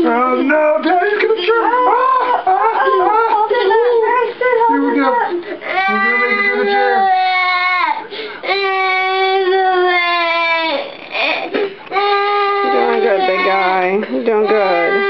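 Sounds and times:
boy crying in long wails: 1.6s - 13.7s.

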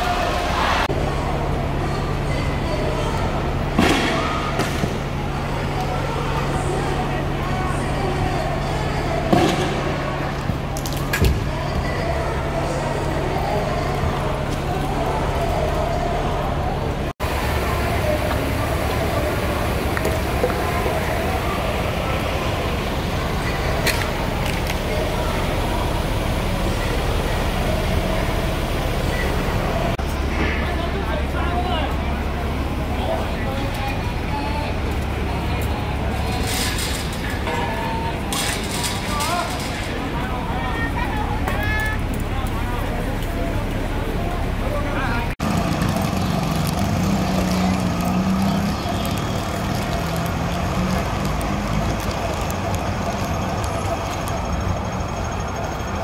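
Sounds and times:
background voices: 0.0s - 56.0s
outdoor street noise: 0.0s - 56.0s.

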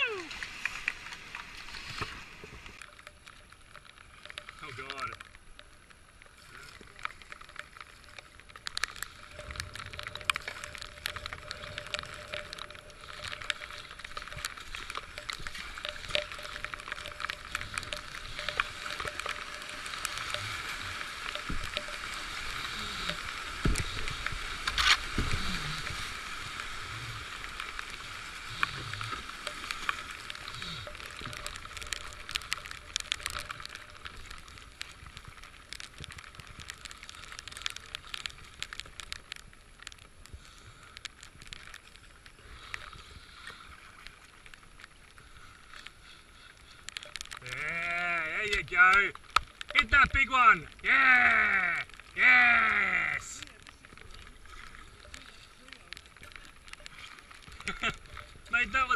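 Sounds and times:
paddle strokes splashing: 0.0s - 5.1s, 6.4s - 47.4s
rushing churning water: 0.0s - 58.9s.

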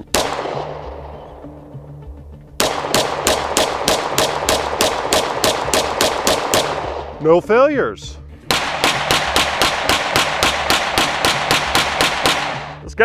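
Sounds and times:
pistol shots in rapid string: 0.0s - 1.5s, 2.6s - 7.4s, 8.5s - 12.9s
background music with low tones: 0.0s - 13.0s.

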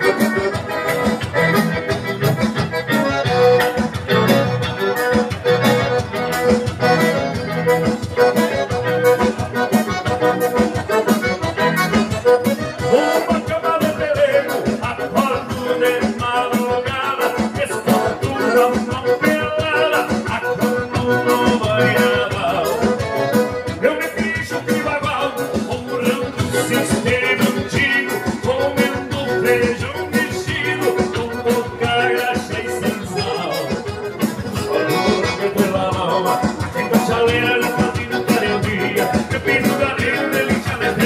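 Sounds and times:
accordion: 0.0s - 41.0s
acoustic guitar: 0.0s - 41.0s
steady rhythmic beat: 0.0s - 41.0s.

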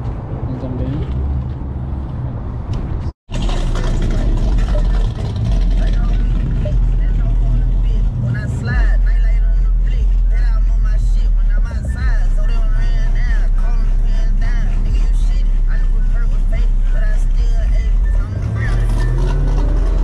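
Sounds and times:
car engine and exhaust droning: 0.0s - 20.0s
parking lot din: 0.0s - 20.0s
voices: 3.4s - 20.0s.

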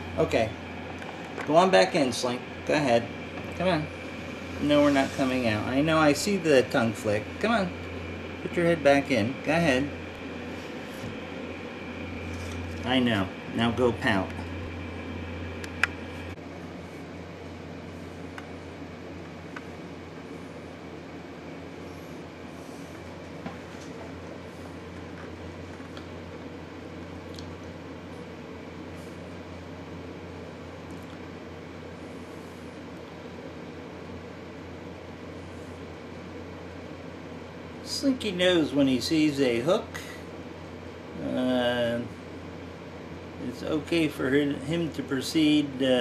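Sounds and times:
steady room hum: 0.0s - 46.0s.

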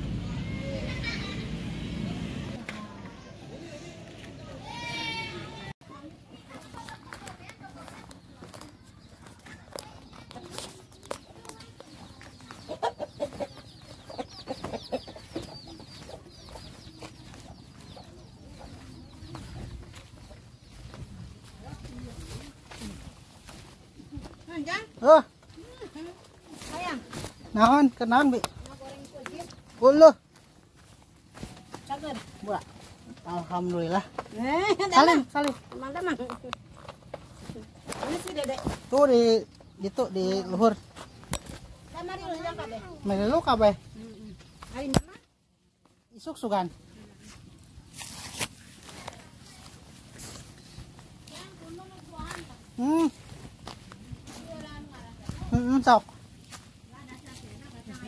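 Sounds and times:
chickens clucking: 6.3s - 45.1s.

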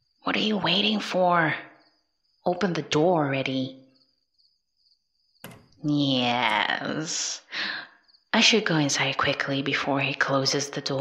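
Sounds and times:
crickets chirping: 0.0s - 9.2s
door latch clicking: 5.5s - 5.7s.

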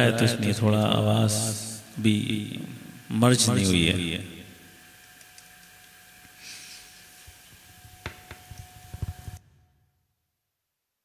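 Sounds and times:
faint room hiss: 0.0s - 9.7s.

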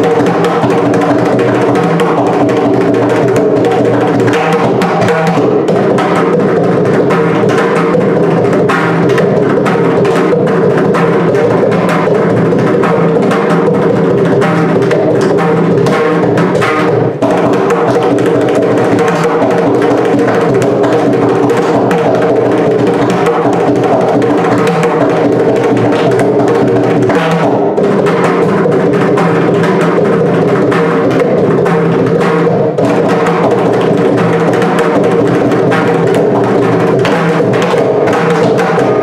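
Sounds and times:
pitched drum strokes: 0.0s - 39.0s.

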